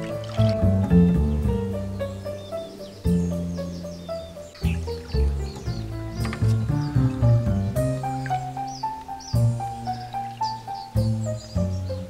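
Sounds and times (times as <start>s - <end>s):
birds chirping: 0.0s - 12.0s
instrumental music with held notes: 0.0s - 12.0s.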